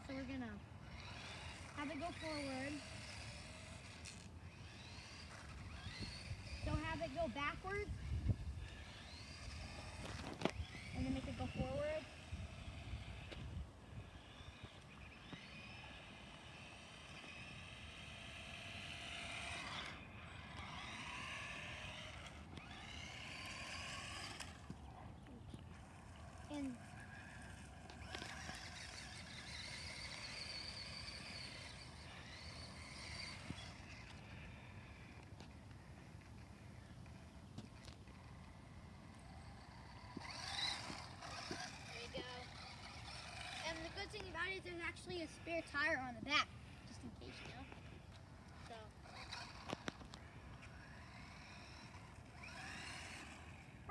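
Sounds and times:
toy car electric motor whining: 0.0s - 53.9s
child's voice: 1.8s - 2.9s, 6.6s - 8.0s, 10.9s - 12.2s, 26.4s - 27.2s, 41.2s - 42.7s, 43.5s - 47.8s, 48.6s - 49.0s.

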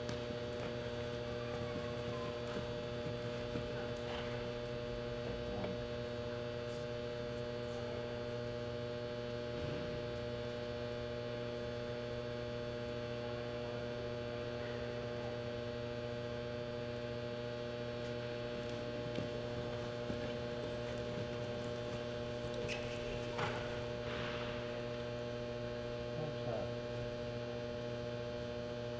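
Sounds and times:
electrical mains hum: 0.0s - 28.9s.

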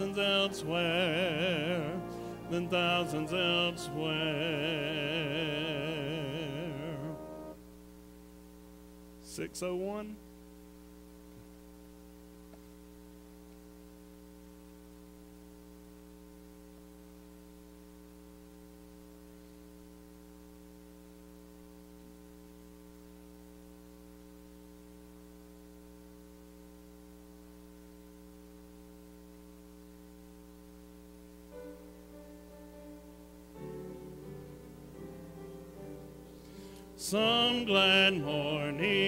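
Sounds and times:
faint electrical mains hum: 0.0s - 39.0s.

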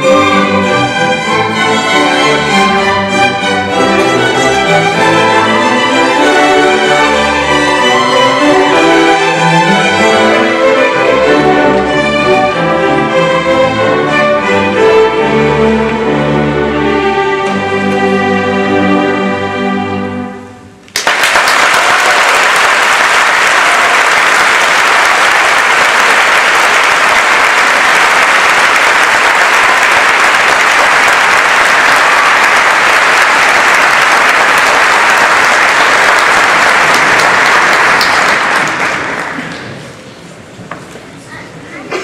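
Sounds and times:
audience applause: 20.9s - 40.0s.

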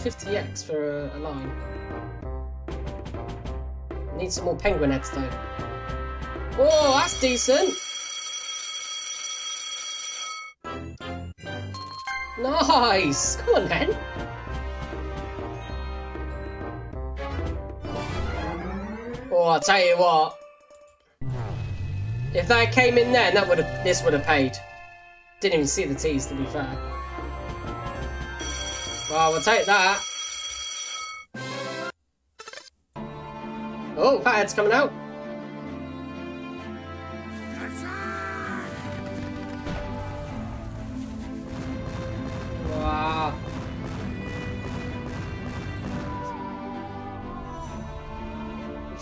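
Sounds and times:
electronic slot machine music: 6.6s - 9.0s, 17.8s - 21.0s, 22.7s - 31.3s.

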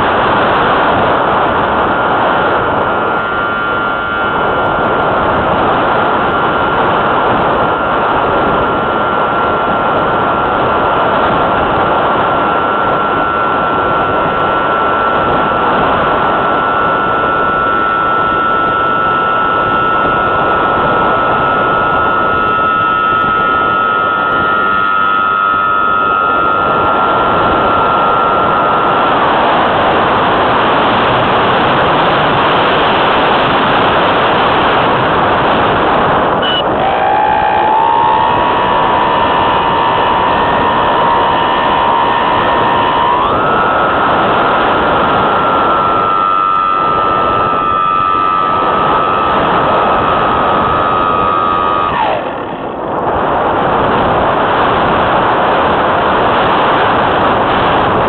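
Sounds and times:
model aircraft motor whine: 0.0s - 58.0s
wind rush on microphone: 0.0s - 58.0s.

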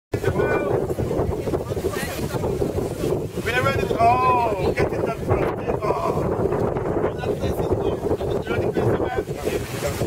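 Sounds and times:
crowd voices: 0.1s - 10.0s
wind buffeting microphone: 0.1s - 10.0s.

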